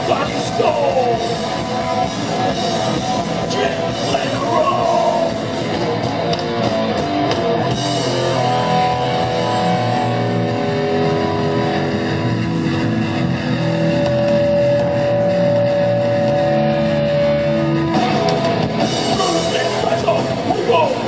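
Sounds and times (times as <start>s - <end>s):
electric guitar long ringing notes: 0.0s - 21.0s
rock band playing: 0.0s - 21.0s.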